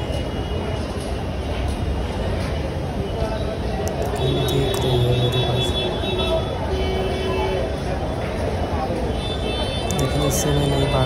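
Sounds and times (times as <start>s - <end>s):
traffic din: 0.0s - 11.0s
voices of passers-by: 0.0s - 11.0s.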